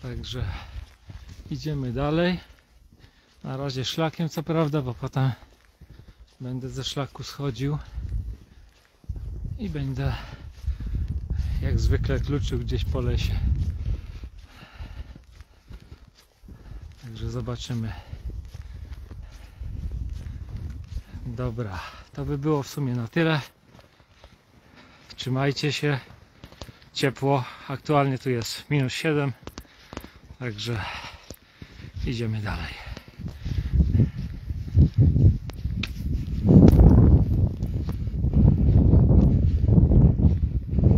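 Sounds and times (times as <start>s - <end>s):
footsteps in snow: 0.0s - 40.9s.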